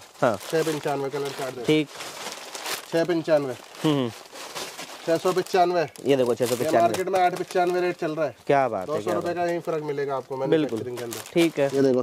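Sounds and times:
man speaking: 0.2s - 1.9s, 2.9s - 4.2s, 5.1s - 12.0s.

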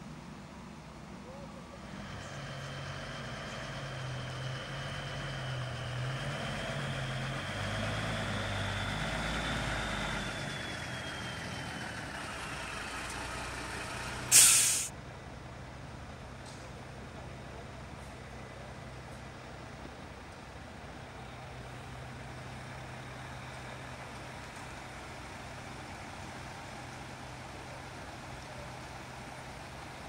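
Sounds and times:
lorry diesel engine: 0.0s - 30.0s
air brakes hissing: 14.3s - 14.9s.

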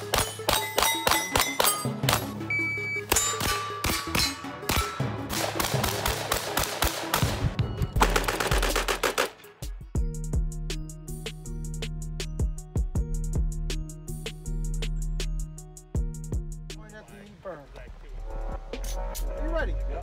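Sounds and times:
background music: 0.0s - 20.0s
gunshots: 3.1s - 9.5s.

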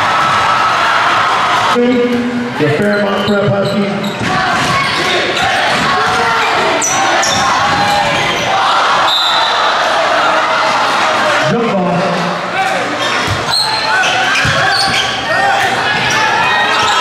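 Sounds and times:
large crowd noise echoing: 0.0s - 17.0s
basketball dribbled on gym floor: 14.4s - 15.1s.

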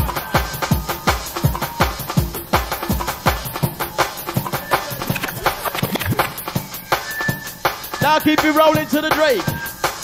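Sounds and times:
fast breakbeat drum hits: 1.1s - 6.8s
synth sounds: 4.4s - 6.8s.

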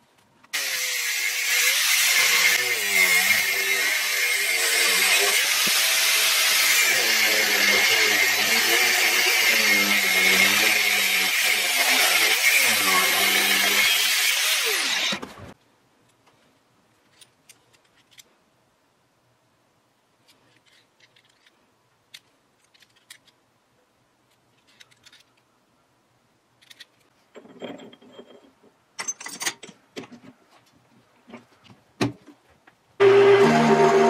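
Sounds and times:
angle grinder cutting steel: 0.6s - 15.2s, 33.0s - 34.0s.

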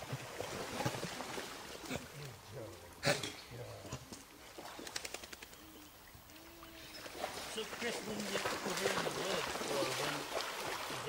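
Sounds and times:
small water splashes: 0.0s - 2.6s, 6.3s - 11.0s.

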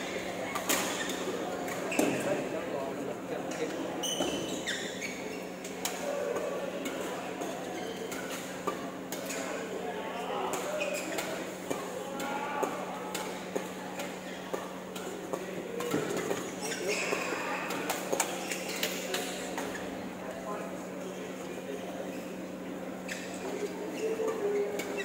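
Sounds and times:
chatter of voices: 0.0s - 25.0s.

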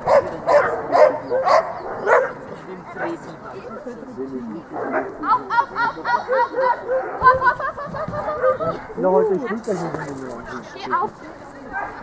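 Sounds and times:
dog yelping: 6.2s - 9.0s.

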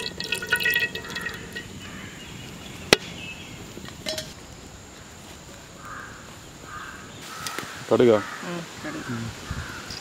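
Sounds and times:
oil dripping into metal pan: 0.0s - 1.9s.

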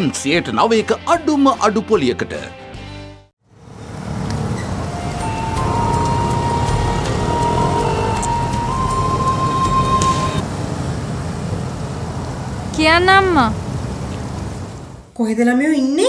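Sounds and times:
road traffic noise: 3.4s - 15.1s
background music with high tone: 4.7s - 10.4s.

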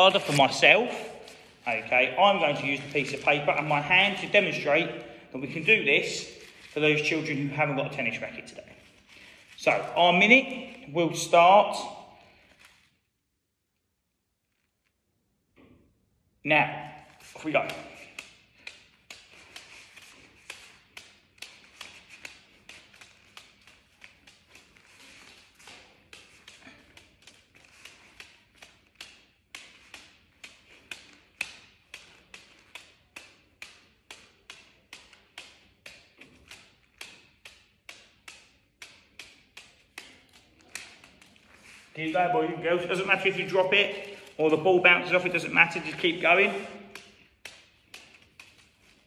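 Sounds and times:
palm tapping paper ball: 17.1s - 41.9s, 45.8s - 49.0s.

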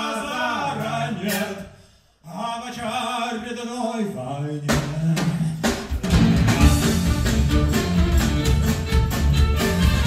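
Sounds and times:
live band playing instrumental: 5.6s - 10.0s.

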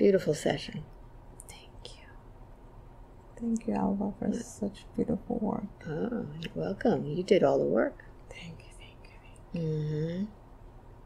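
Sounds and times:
whispered hissy sounds: 0.0s - 2.4s, 3.2s - 10.4s.

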